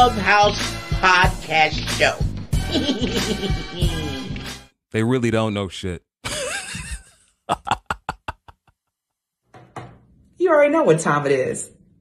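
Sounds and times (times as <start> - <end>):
man laughing: 2.6 - 4.3, 6.2 - 8.7.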